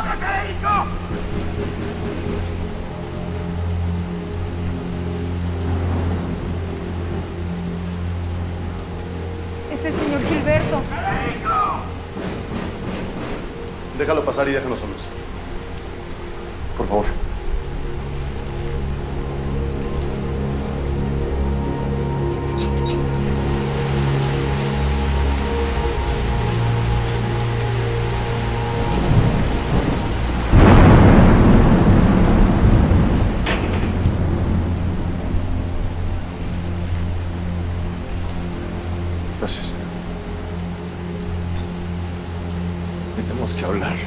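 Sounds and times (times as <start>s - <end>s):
thunderclap rumbling: 0.0s - 3.5s, 5.6s - 8.7s, 9.3s - 15.0s, 27.9s - 37.2s
low held music notes: 0.0s - 44.0s
steady rain: 0.0s - 44.0s.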